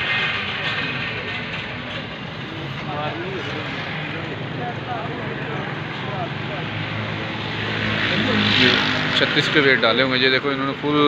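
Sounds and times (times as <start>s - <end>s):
indistinct voices talking: 0.0s - 11.0s
steady background noise: 0.0s - 11.0s.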